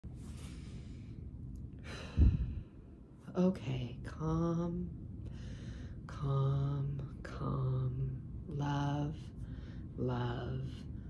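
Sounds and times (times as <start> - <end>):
low steady rumble: 0.0 - 11.0
woman sighing: 1.8 - 2.6.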